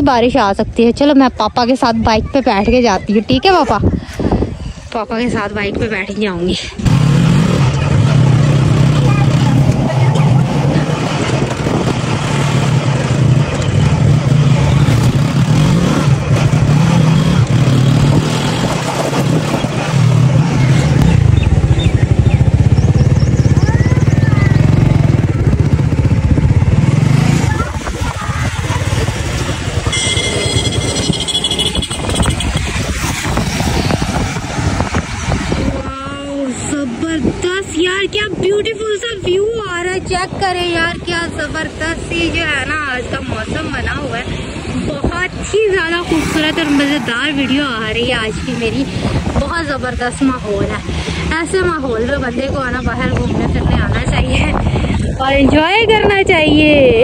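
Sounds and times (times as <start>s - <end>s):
motorcycle engine running: 6.8s - 37.5s, 39.7s - 57.0s.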